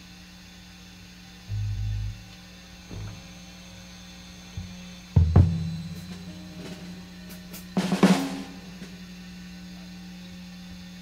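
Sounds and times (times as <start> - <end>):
amplifier hum: 0.0 - 11.0
low electric bass notes: 1.5 - 3.3.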